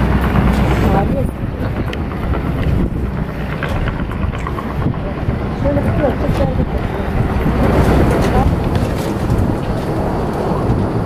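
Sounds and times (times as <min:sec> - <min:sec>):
aircraft engines rumbling: 0:00.0 - 0:11.0.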